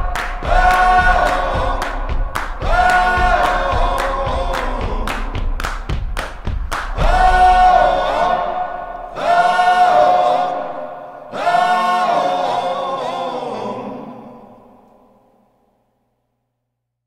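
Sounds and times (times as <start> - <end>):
quick drum hits: 0.0 - 8.9.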